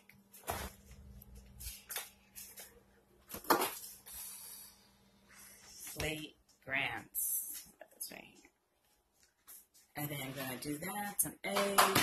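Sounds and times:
faint steady hum: 0:00.0 - 0:11.9
kitchen items knocking and rustling: 0:03.2 - 0:04.0, 0:10.0 - 0:12.0.

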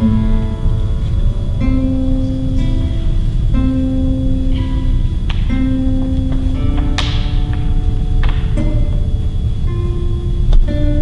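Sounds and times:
classical guitar notes: 0:00.0 - 0:11.0
low background rumble: 0:00.0 - 0:11.0.

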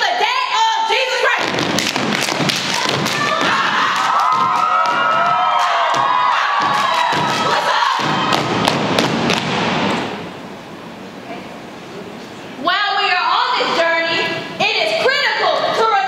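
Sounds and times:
rhythmic foot stomps: 0:01.4 - 0:10.3
people shouting: 0:02.4 - 0:08.7.

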